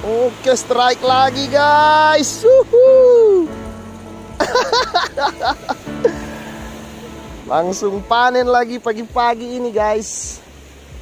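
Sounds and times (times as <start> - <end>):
man whooping: 2.0 - 3.5
excited laughter: 4.4 - 6.4.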